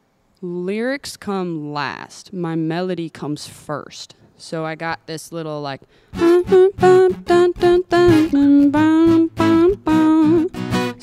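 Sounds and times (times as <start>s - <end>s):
woman singing wordless melody: 5.6s - 11.0s
acoustic guitar: 6.1s - 11.0s.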